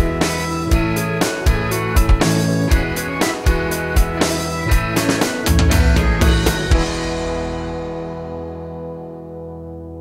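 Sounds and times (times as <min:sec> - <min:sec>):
rock band final chord ringing: 0:00.0 - 0:09.5.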